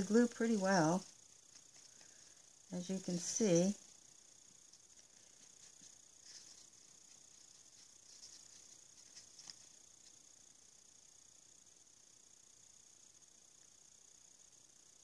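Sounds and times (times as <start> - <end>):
soft brush brushing: 0.0 - 10.5
faint steady hiss: 0.0 - 15.0.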